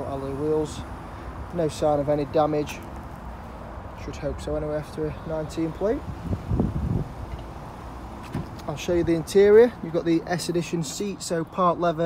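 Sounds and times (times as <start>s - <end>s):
low rumbling wind noise: 3.1s - 10.0s.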